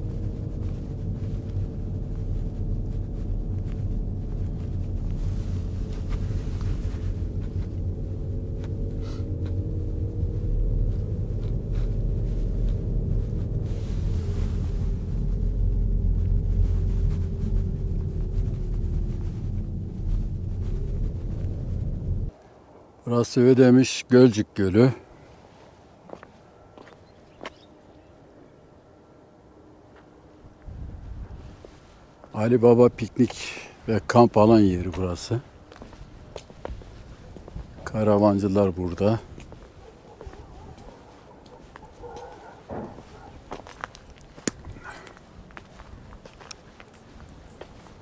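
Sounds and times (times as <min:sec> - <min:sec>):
car engine running: 0:00.0 - 0:22.3
road rumble: 0:00.0 - 0:48.0.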